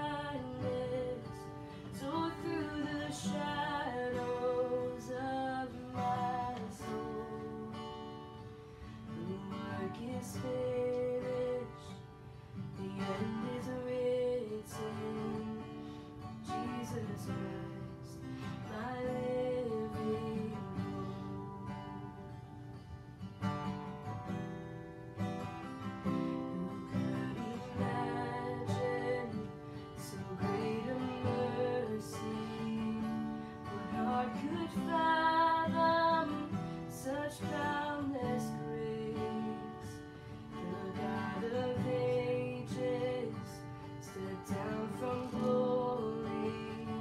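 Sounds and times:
woman singing: 0.0s - 22.5s, 25.4s - 47.0s
acoustic guitar strumming: 0.0s - 47.0s.

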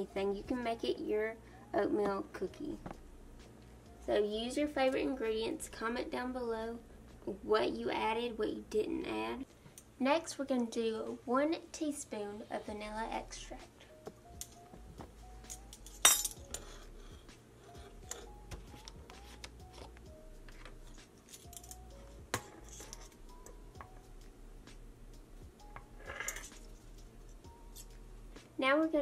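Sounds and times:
quiet background music: 0.0s - 29.0s
metal spoon clinking: 15.4s - 16.7s, 21.2s - 23.6s, 25.6s - 26.8s.

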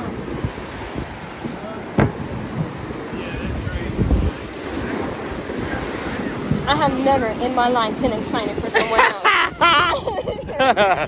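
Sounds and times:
surf breaking over rocks: 0.0s - 9.6s
wind buffeting microphone: 0.0s - 11.0s.

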